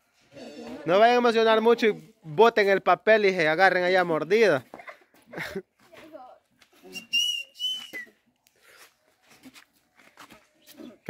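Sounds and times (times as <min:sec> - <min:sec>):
faint laughter: 0:04.7 - 0:05.7.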